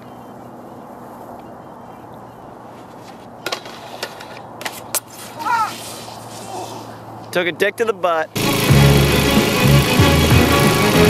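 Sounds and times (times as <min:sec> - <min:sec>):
person crying out: 0:05.4 - 0:05.8.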